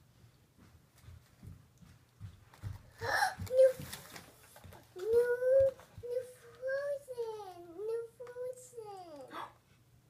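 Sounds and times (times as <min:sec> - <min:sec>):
toddler gasping: 0:03.0 - 0:03.6
high-pitched toddler vocal sound: 0:05.0 - 0:09.6.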